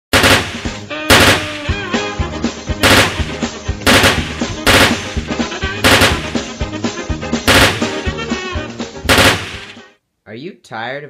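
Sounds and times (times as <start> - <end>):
automatic gunfire bursts: 0.1 - 1.8, 2.8 - 6.5, 7.5 - 8.2, 9.1 - 9.8.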